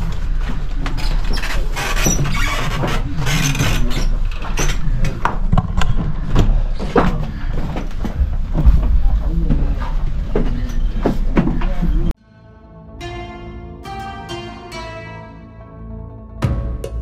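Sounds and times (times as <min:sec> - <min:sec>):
footsteps on wooden steps: 0:06.0 - 0:11.9
soft plucked-string music: 0:12.4 - 0:17.0.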